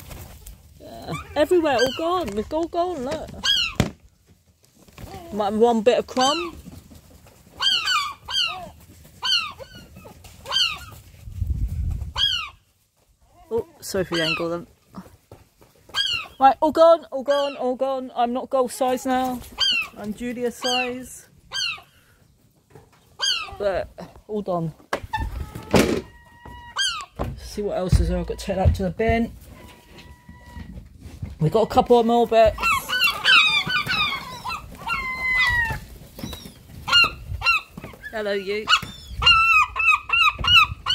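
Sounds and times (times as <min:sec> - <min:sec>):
gulls calling: 0:32.5 - 0:40.9.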